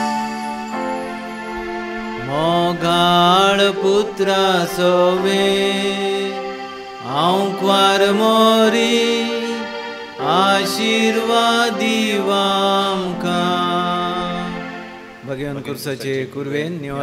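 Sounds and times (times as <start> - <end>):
electronic keyboard chords: 0.0 - 15.8
group singing a hymn: 2.1 - 15.2.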